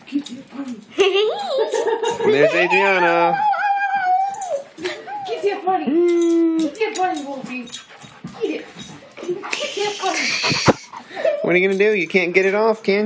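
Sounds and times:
dog whining: 2.4s - 6.8s, 9.2s - 11.4s.

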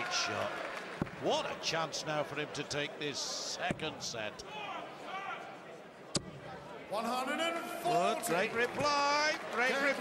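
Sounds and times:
faint voices in a hall: 0.0s - 10.0s.

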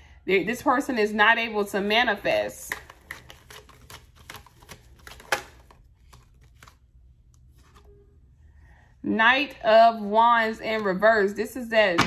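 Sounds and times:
cards being shuffled: 2.7s - 7.9s.

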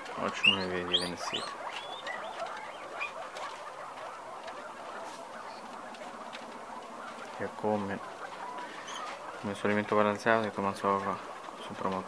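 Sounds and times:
guinea pigs squeaking: 0.0s - 12.0s.

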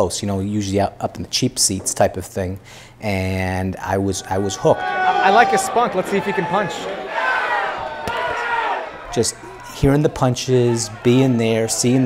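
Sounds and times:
crowd shouting: 4.2s - 12.0s.

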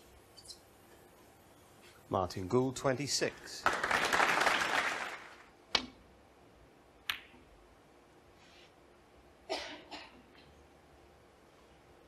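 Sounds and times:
audience applause: 3.6s - 5.5s.

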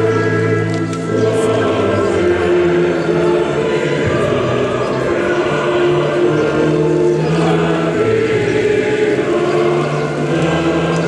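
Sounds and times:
slow choral music: 0.0s - 11.0s.

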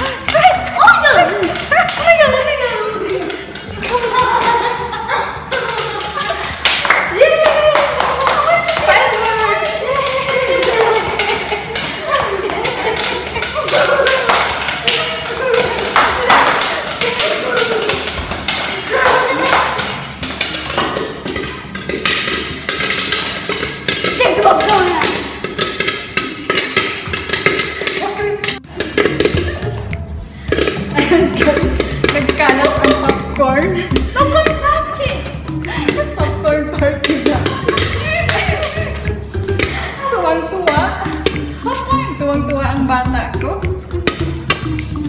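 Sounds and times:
popcorn popping in a pan: 12.6s - 29.7s.

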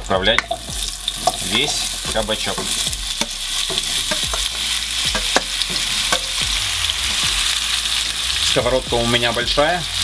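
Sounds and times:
vegetables sizzling in oil: 0.0s - 10.0s
wooden spatula stirring: 1.1s - 6.4s.

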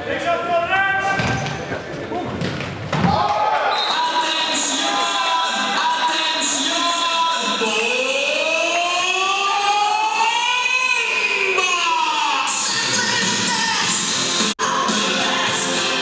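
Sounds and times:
background music with sung melody: 3.9s - 8.9s, 12.6s - 16.0s.

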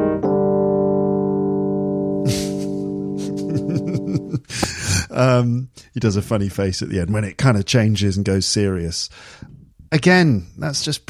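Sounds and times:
electric keyboard chord: 0.0s - 4.4s
man laughing: 2.3s - 5.4s.

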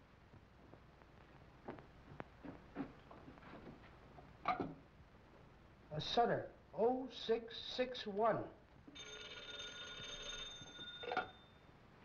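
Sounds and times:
telephone bell ringing: 8.9s - 11.7s.

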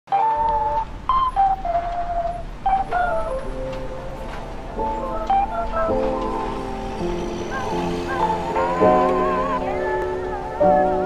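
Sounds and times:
lo-fi lead melody: 0.1s - 11.0s
steady low hum: 0.4s - 10.8s.

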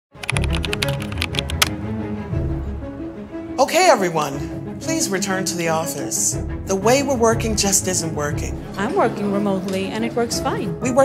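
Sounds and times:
computer keyboard typing: 0.2s - 1.7s
background music with low notes: 0.2s - 11.0s.

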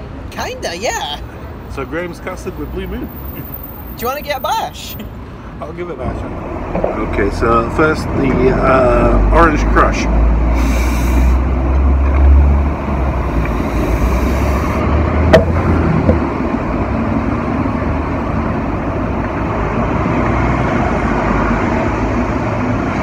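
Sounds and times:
steady traffic hum: 0.0s - 23.0s
vehicle engine rumble: 0.0s - 23.0s.

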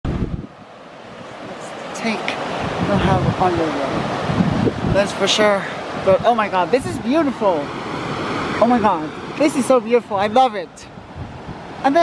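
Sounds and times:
wind buffeting microphone: 0.0s - 12.0s
river rushing: 0.1s - 12.0s.

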